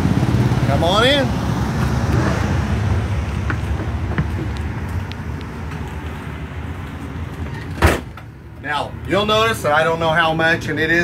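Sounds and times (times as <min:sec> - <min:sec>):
steady low rumble: 0:00.0 - 0:09.1
door shutting bang: 0:07.7 - 0:08.3.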